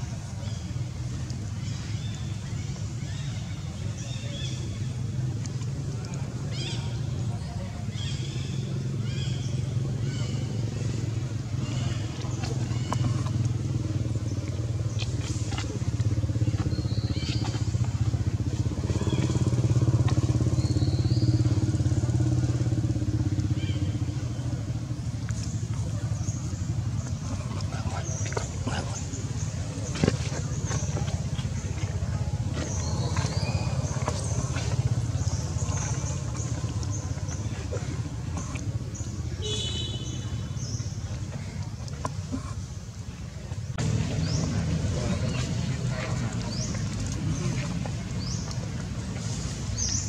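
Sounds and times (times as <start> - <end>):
faint voices: 0.0 - 39.4, 40.2 - 50.0
vehicle engine droning: 0.0 - 50.0.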